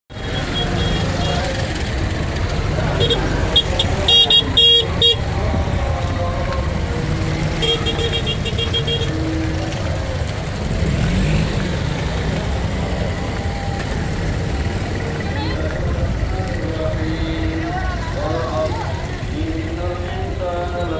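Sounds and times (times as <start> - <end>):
horn beeping rapidly: 0.1 - 1.8, 3.0 - 5.3, 7.5 - 9.6
traffic engine rumble: 0.1 - 20.9.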